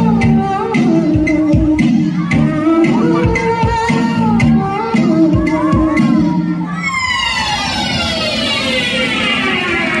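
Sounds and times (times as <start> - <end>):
dance music with vocals: 0.0 - 10.0
falling pitch sweep: 6.7 - 10.0.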